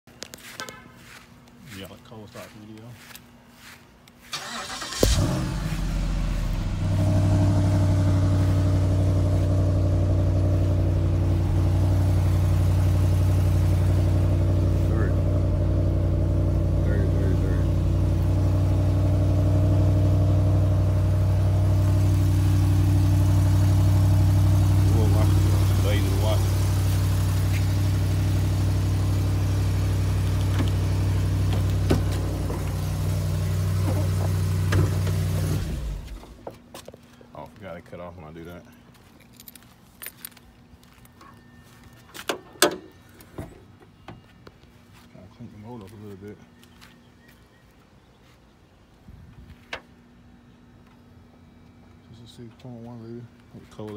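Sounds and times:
car engine fast idle: 0:04.3 - 0:36.1
car engine cranking and starting: 0:04.3 - 0:36.4.

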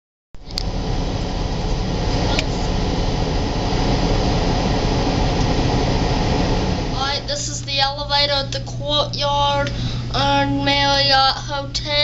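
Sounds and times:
rushing noise with low rumble: 0:00.4 - 0:11.1.

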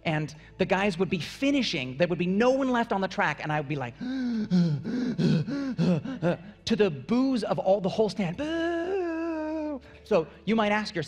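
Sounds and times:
man gasping and panting: 0:04.0 - 0:06.6.

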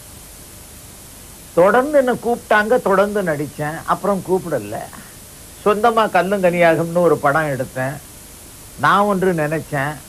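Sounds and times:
steady hiss: 0:00.0 - 0:10.0
man talking: 0:01.6 - 0:08.0, 0:08.8 - 0:10.0.

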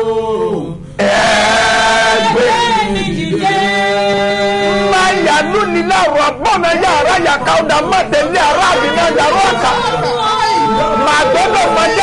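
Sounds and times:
man and woman singing: 0:00.0 - 0:12.0.

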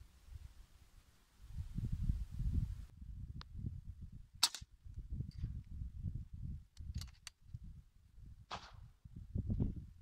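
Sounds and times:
suppressed air rifle shot: 0:08.5 - 0:08.8.

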